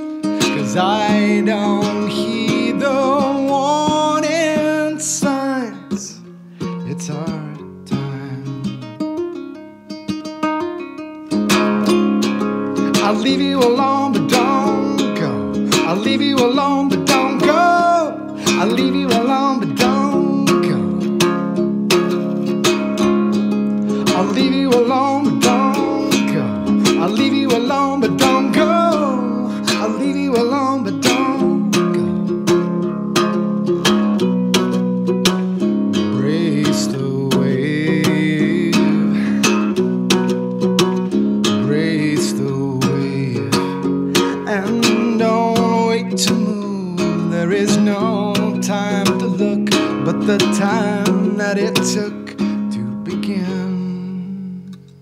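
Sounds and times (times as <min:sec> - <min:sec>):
ukulele picking and strumming: 0:00.0 - 0:55.0.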